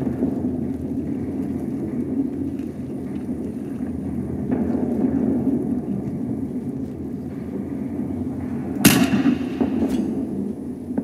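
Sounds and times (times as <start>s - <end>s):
battle ambience rumble: 0.0s - 11.0s
loud gunshot echoing: 8.8s - 10.3s.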